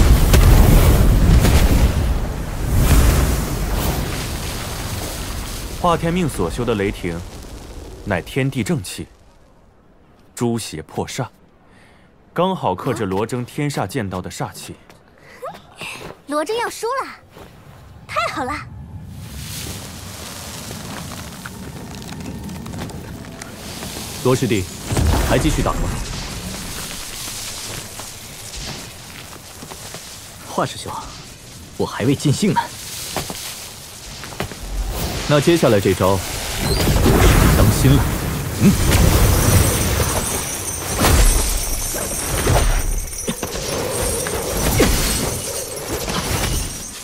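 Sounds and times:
lightning strike crash: 0:00.0 - 0:09.4, 0:23.3 - 0:29.6, 0:33.0 - 0:45.6
rumbling hissing sound effects: 0:00.0 - 0:09.7, 0:17.9 - 0:46.0
faint crackles: 0:00.0 - 0:10.4, 0:14.9 - 0:47.0
low rumble: 0:17.8 - 0:28.5.

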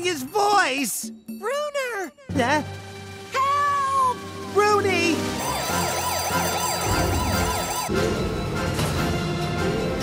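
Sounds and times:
electronic siren sweeping: 0:05.4 - 0:08.0.

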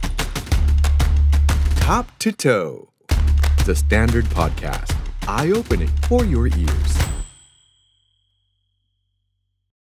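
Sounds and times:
bright jingle ding: 0:05.4 - 0:08.3.

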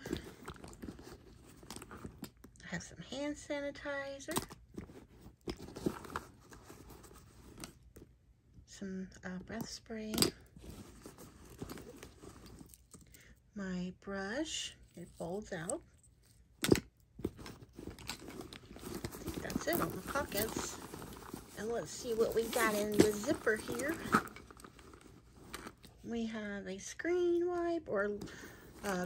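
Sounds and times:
hand rummaging in handbag: 0:00.0 - 0:02.6, 0:04.2 - 0:08.1, 0:10.0 - 0:13.2, 0:14.8 - 0:26.1, 0:27.2 - 0:29.0.

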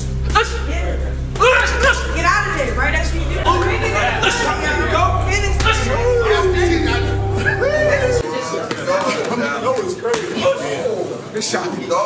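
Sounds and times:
music with deep bass: 0:00.0 - 0:08.2
men's voices: 0:00.1 - 0:11.2.

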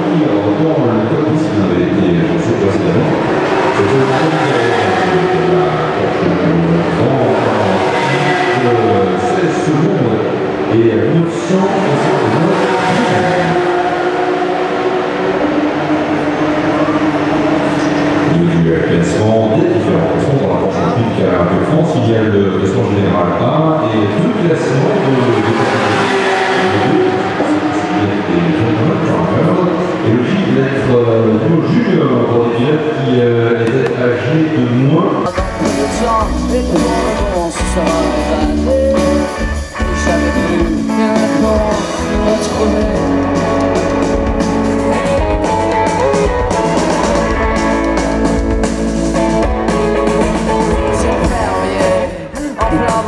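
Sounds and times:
race car engine: 0:00.0 - 0:53.0.

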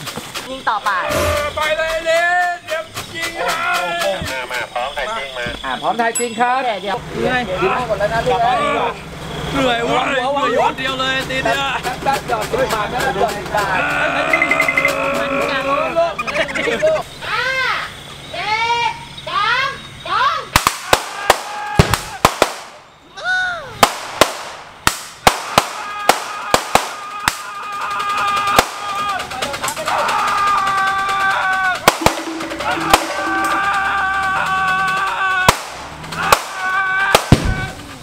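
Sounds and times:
gunshots: 0:20.6 - 0:22.8, 0:23.8 - 0:27.5, 0:28.5 - 0:28.9, 0:31.8 - 0:34.0, 0:35.5 - 0:37.7.

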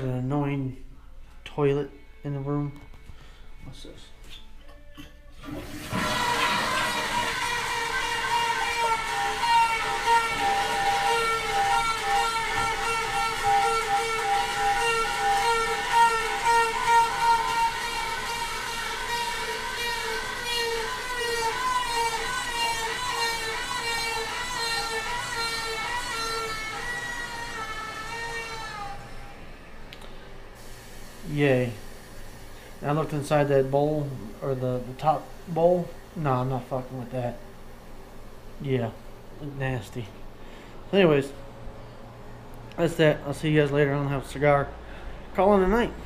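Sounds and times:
toilet fill valve whining: 0:04.2 - 0:40.8
person speaking: 0:45.3 - 0:46.0.

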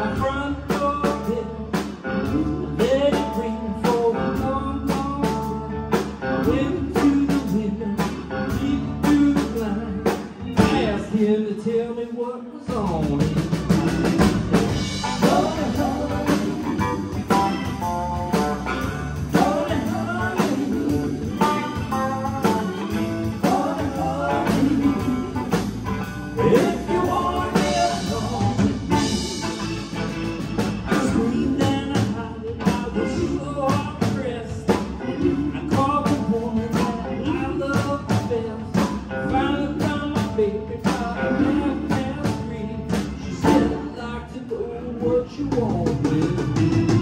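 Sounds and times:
live rock band playing: 0:00.0 - 0:12.0, 0:12.7 - 0:47.0.

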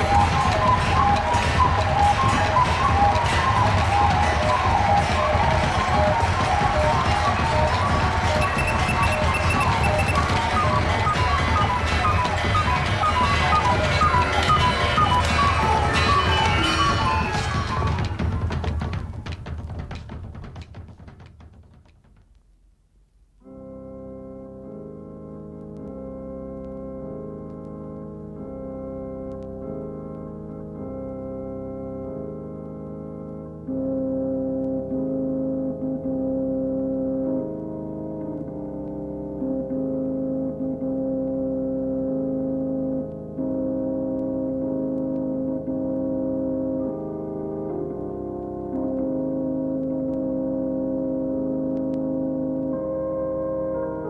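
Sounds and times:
organ chords: 0:00.0 - 0:18.8, 0:23.4 - 0:54.0.

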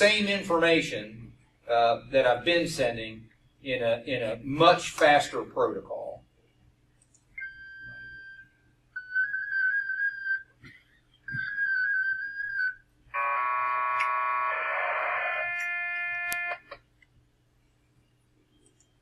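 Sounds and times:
dense chord of data tones: 0:13.1 - 0:16.7.

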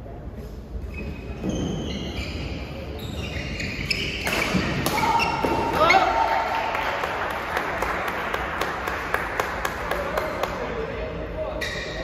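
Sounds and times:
shoes squeaking on court: 0:00.8 - 0:06.0.

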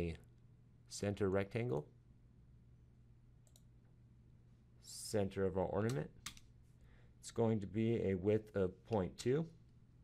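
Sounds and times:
low steady hum: 0:00.0 - 0:10.0
faint computer mouse click: 0:03.4 - 0:03.7.

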